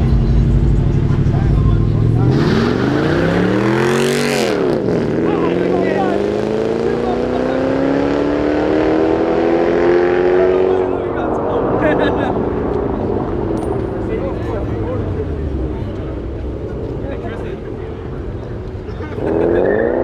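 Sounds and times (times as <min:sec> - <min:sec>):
car engines revving: 0:00.0 - 0:20.0.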